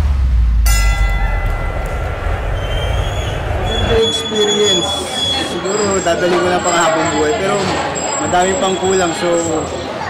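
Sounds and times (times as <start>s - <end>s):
low rumble: 0.0s - 4.3s
high ringing tones: 0.7s - 7.0s.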